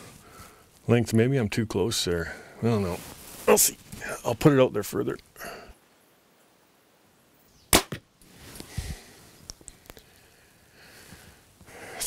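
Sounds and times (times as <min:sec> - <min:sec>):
bow string crack: 0:07.7 - 0:08.1
quieter crack: 0:07.7 - 0:08.1.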